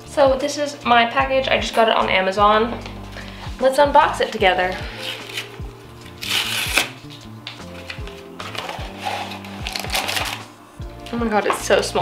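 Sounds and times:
background music with beat: 0.0s - 12.0s
cardboard envelope tearing: 4.9s - 7.0s, 8.4s - 10.5s
plastic rustling: 7.7s - 10.5s.

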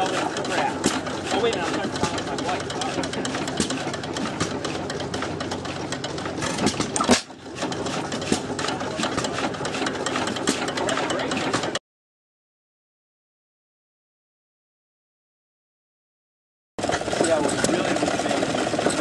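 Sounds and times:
stationary gas engine clattering: 0.0s - 11.8s, 16.8s - 19.0s.

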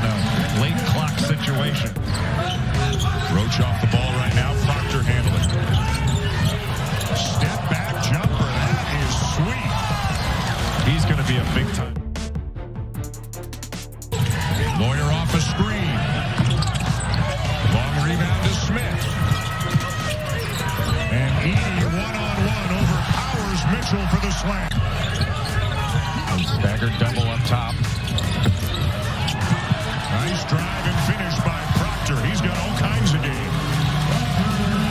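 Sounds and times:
arena crowd hubbub: 0.0s - 12.0s, 14.1s - 34.9s.

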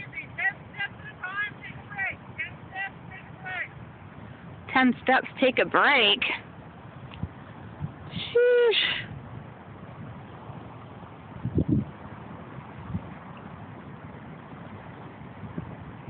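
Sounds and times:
low gust rumble: 0.0s - 16.0s
wind noise on microphone: 0.0s - 16.0s.

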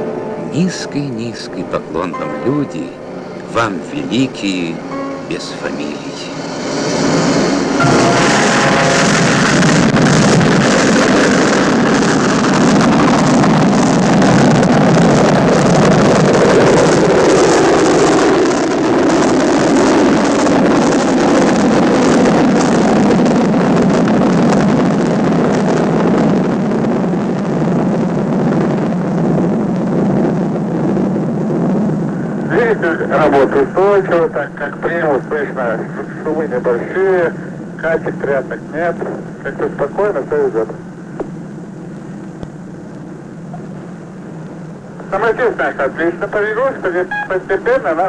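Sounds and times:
rocket engines roaring: 0.0s - 48.0s.

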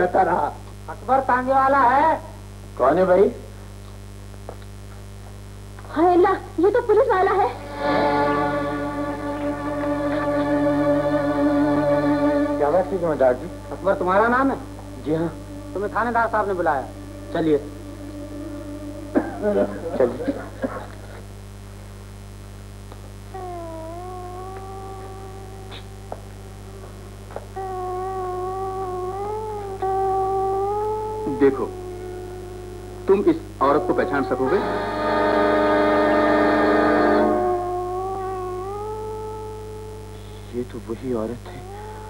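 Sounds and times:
low mains hum: 0.0s - 42.0s
long pitched note: 7.6s - 20.2s, 33.6s - 37.8s.

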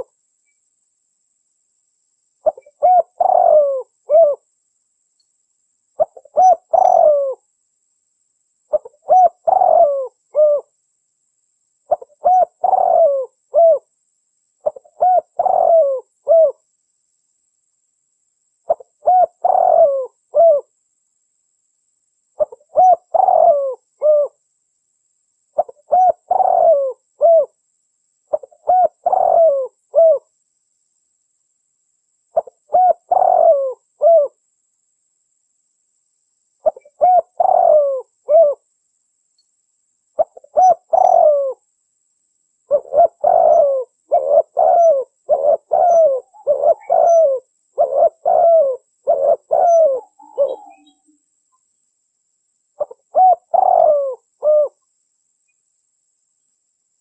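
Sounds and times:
dove cooing: 2.4s - 4.5s, 6.0s - 7.4s, 8.7s - 10.7s, 11.9s - 13.9s, 14.6s - 16.6s, 18.7s - 20.7s, 22.4s - 24.4s, 25.6s - 27.6s, 28.3s - 30.3s, 32.4s - 34.4s, 36.6s - 38.6s, 40.2s - 41.6s, 42.7s - 51.1s, 52.8s - 54.8s.

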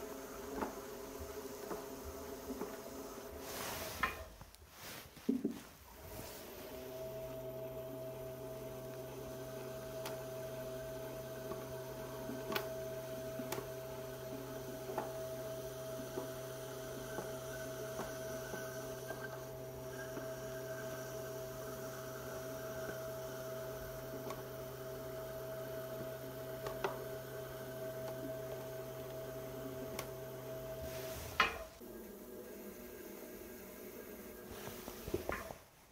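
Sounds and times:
pottery wheel motor humming: 0.0s - 4.3s, 4.9s - 35.6s.

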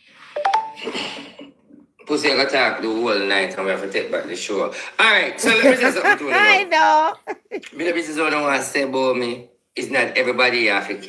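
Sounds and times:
short electronic beep: 0.4s - 0.8s.

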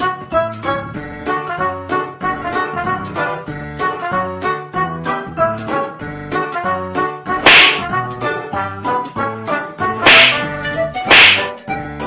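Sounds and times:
comic music with bouncy beat: 0.0s - 12.0s
whip-like slap: 7.4s - 8.1s, 10.0s - 11.6s.

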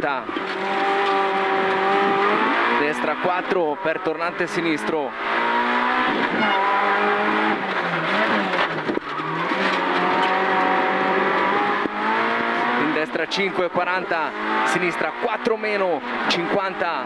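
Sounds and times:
rally car engine revving: 0.0s - 17.0s.

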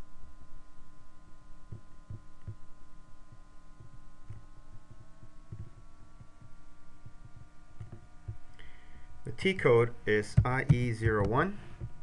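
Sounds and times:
faint high whining tones: 0.0s - 12.0s
steady hum: 0.0s - 12.0s
irregular low thumps: 1.3s - 12.0s.

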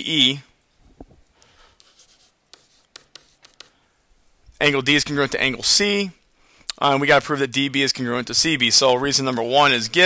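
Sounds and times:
stylus tapping on tablet screen: 2.5s - 3.8s.

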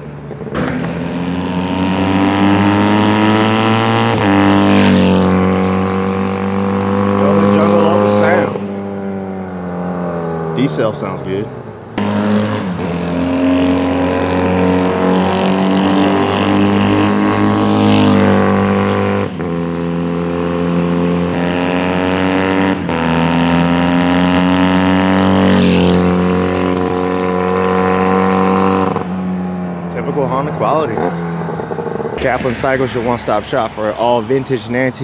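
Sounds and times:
motorcycle engine passing by: 0.1s - 35.0s.

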